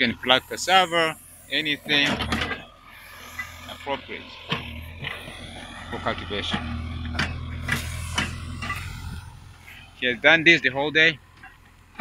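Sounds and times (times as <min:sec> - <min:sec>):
diesel engine running: 0:00.0 - 0:12.0.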